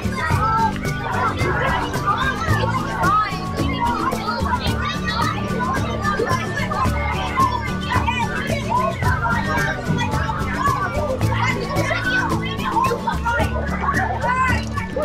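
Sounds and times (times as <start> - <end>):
background music with steady beat: 0.0 - 15.0
children chattering and calling out: 0.0 - 15.0.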